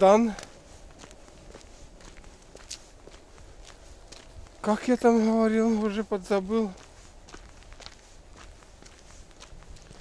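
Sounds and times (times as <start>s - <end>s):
faint footsteps walking: 0.0s - 10.0s.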